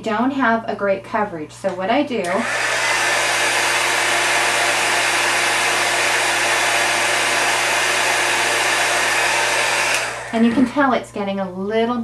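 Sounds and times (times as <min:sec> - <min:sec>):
heat gun blowing air: 0:02.2 - 0:10.6.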